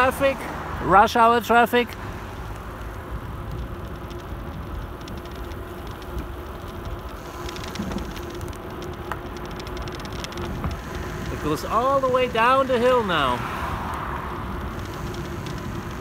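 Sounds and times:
bicycle rolling on asphalt: 0.0 - 16.0
bike ticks and clicks: 0.0 - 16.0
wind rumbling on microphone: 1.9 - 16.0.

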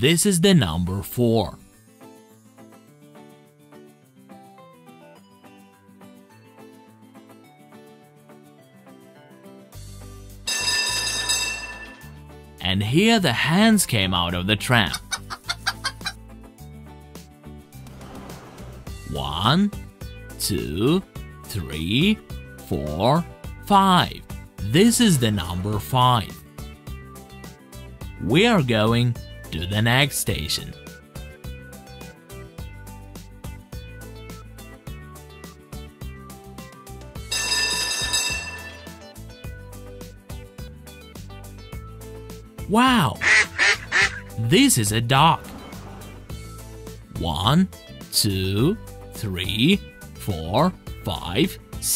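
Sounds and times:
cheerful background music: 0.0 - 51.9
tram bell ringing: 10.5 - 12.2, 37.3 - 39.0.

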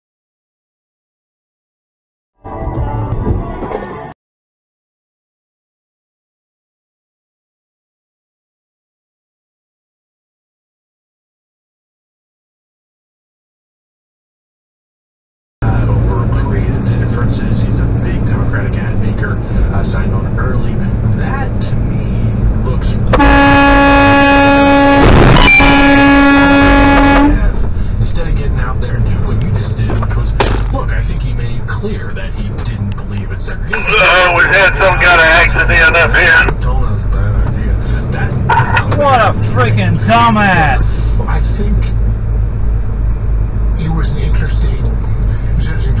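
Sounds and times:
road noise: 2.4 - 4.2, 15.6 - 46.0
truck engine droning: 15.6 - 46.0
truck air horn blast: 23.2 - 27.6
sharp crack: 30.4 - 30.8.

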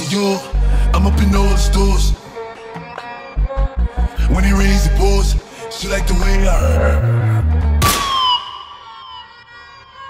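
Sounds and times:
hip-hop beat: 0.0 - 10.0.

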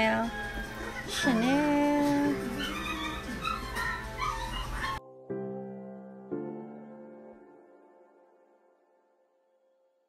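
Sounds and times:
puppy whimpering and yipping: 0.0 - 5.0
soft background music: 0.0 - 10.0.

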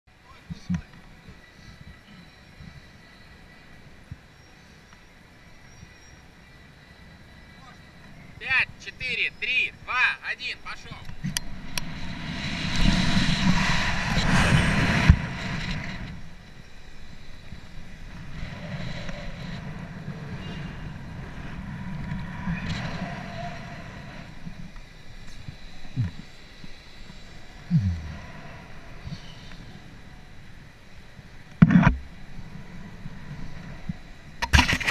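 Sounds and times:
wind rushing over microphone: 10.6 - 34.9.

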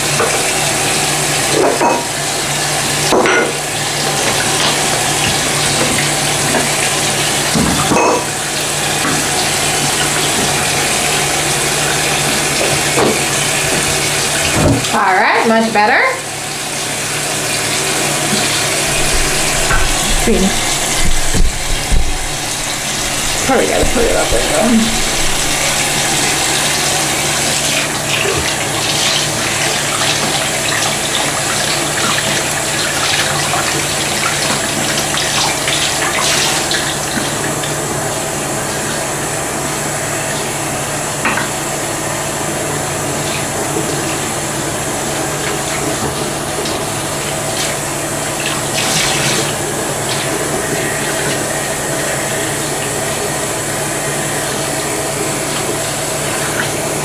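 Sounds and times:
tap water running into sink: 0.0 - 57.0
water splashing over hair: 16.6 - 38.3, 45.1 - 53.4.

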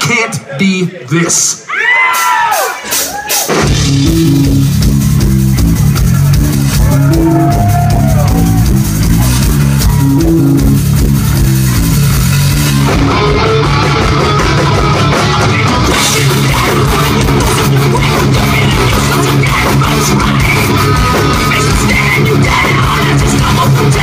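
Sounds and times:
metal band playing: 2.2 - 24.0
falling pitched wail: 6.7 - 8.8, 9.6 - 10.7.

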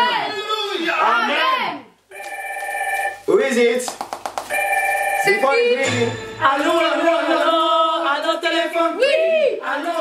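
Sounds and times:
telephone ringing in a song: 2.1 - 3.2, 4.5 - 6.4.

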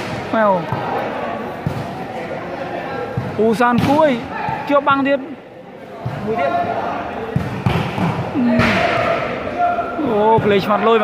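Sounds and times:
voices: 0.3 - 11.0
volleyball thumping: 3.1 - 4.7, 7.3 - 9.4.

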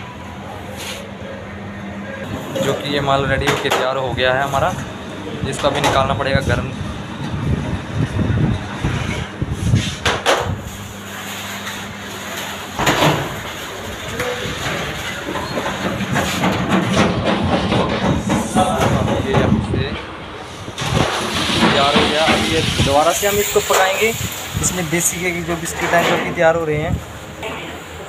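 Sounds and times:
machinery humming: 0.0 - 28.0.

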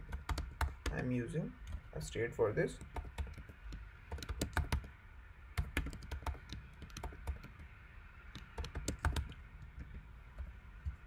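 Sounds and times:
typing on computer keyboard: 0.0 - 1.0, 2.8 - 4.9, 5.6 - 7.7, 8.3 - 10.0.

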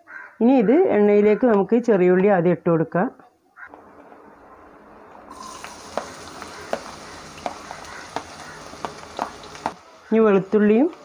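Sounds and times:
oil popping and crackling: 5.3 - 9.8
shallots sizzling in hot oil: 5.3 - 11.0.

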